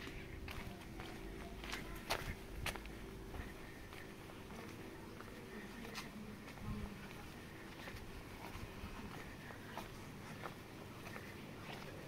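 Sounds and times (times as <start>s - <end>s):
footsteps on cobblestones: 0.0s - 12.0s.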